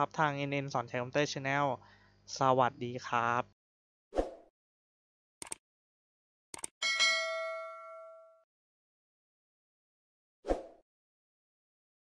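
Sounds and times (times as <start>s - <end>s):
bell ding: 6.8s - 8.5s.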